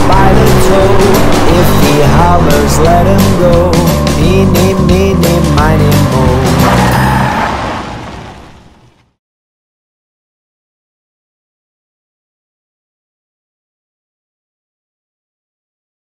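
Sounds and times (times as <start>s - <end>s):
upbeat children's song music: 0.0s - 7.0s
cartoon car engine revving: 0.0s - 8.6s
tyres squealing: 5.9s - 8.1s.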